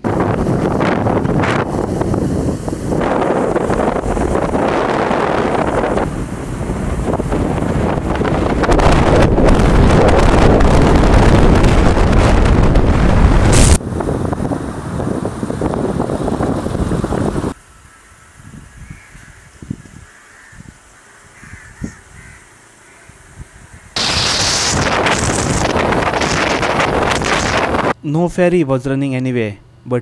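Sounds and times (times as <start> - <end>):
wind rushing over microphone: 0.0 - 17.6, 18.2 - 20.8, 23.1 - 28.0
crows cawing faintly: 17.6 - 24.0.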